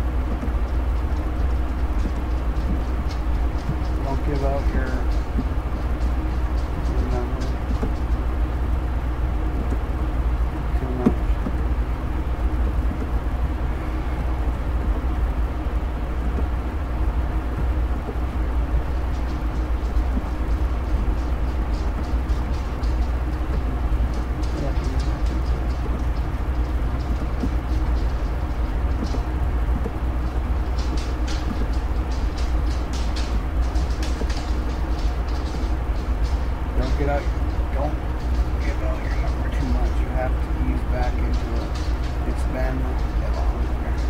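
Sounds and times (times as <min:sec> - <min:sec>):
low rumble and hum: 0:00.0 - 0:44.0.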